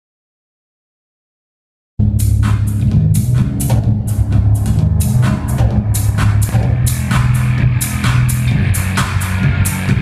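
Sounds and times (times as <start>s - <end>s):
bass line: 2.0s - 10.0s
driving drum beat: 2.0s - 10.0s
live band music: 2.5s - 10.0s.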